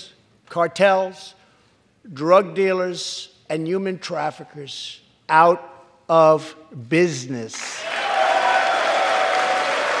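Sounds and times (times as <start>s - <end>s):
audience applauding: 7.8s - 10.0s.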